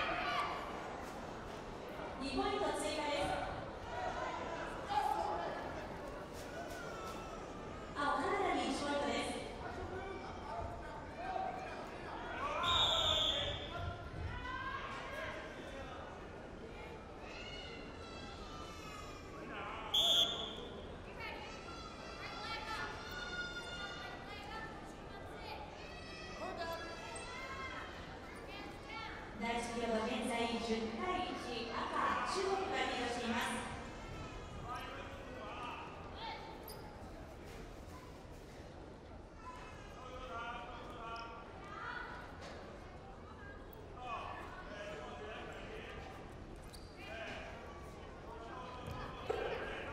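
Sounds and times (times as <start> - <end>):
referee's whistle: 12.6 - 13.7, 19.9 - 20.8.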